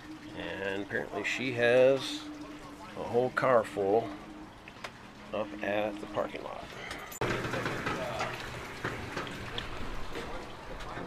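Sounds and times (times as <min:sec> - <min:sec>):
outdoor ambience: 0:00.0 - 0:11.0.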